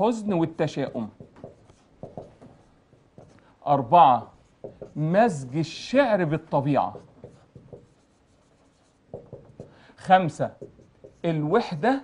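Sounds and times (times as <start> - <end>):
marker pen writing on whiteboard: 0.0 - 12.0.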